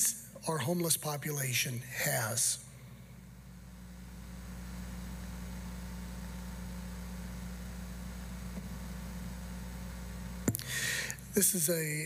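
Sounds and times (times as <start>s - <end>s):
steady low hum with hiss: 0.0s - 12.0s.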